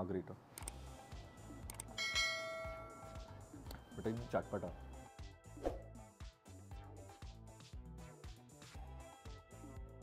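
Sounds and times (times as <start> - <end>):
short clicks: 0.6 - 0.8
bell chime ringing: 2.0 - 3.4.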